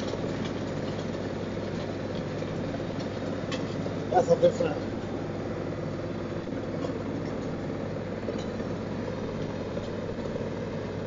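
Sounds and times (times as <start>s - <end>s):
tractor engine running: 0.0s - 11.0s
wood chipper droning: 0.0s - 11.0s.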